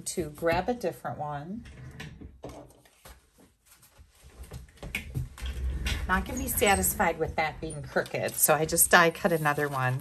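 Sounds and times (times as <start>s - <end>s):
paper and craft supplies rustling: 2.6s - 4.8s, 6.0s - 10.0s.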